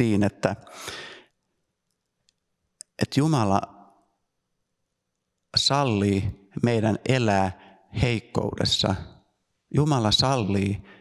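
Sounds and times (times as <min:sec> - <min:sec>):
man speaking into microphone: 0:00.0 - 0:01.2, 0:02.8 - 0:03.7, 0:05.6 - 0:11.0.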